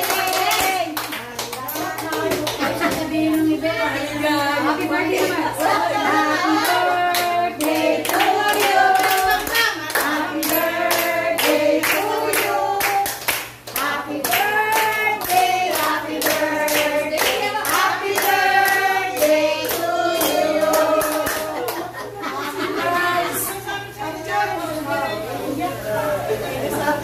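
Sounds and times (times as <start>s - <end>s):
hands clapping: 0.0s - 3.1s, 6.6s - 21.8s
group singing: 2.0s - 27.0s.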